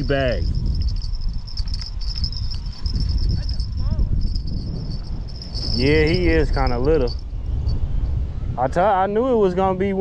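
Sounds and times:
insect chorus trilling: 0.0 - 7.7
wind rumble on microphone: 0.0 - 10.0.

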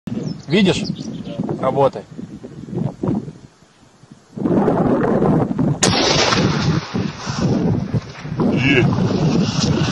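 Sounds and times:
heavy rumbling weapons fire: 5.8 - 7.6
sharp crack: 5.8 - 8.3.

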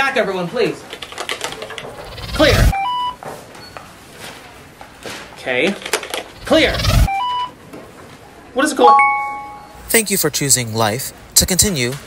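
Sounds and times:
low background noise: 0.0 - 12.0
faint high beep: 8.8 - 9.9
short electronic beeps: 8.9 - 9.9.

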